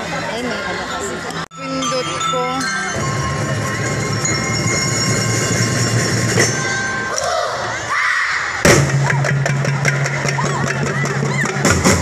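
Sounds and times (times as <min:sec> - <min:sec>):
bell-lyre notes: 0:01.5 - 0:07.2
drum rolls: 0:03.0 - 0:07.1, 0:08.6 - 0:12.0.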